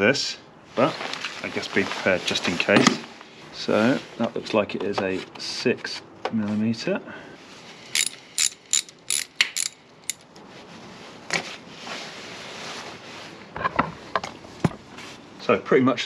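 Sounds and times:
faint rustling: 0:00.7 - 0:05.3
ratchet wrench clicking: 0:07.9 - 0:10.2.

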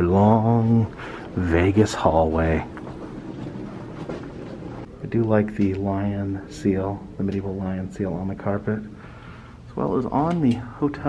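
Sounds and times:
footsteps on carpet: 0:02.3 - 0:04.9.

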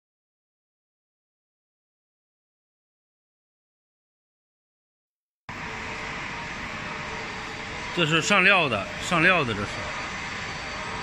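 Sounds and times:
factory machinery hum: 0:05.5 - 0:11.0.

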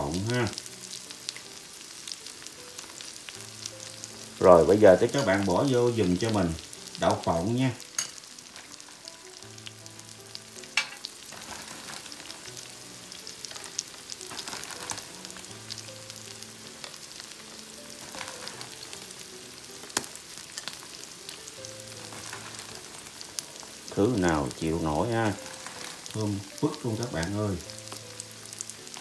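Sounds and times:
faint background music: 0:00.0 - 0:29.0
scallops sizzling in oil: 0:00.0 - 0:29.0.

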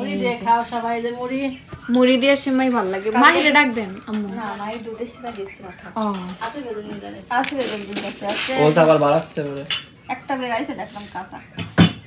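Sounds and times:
puffed rice rattling in plastic tub: 0:10.8 - 0:11.4.

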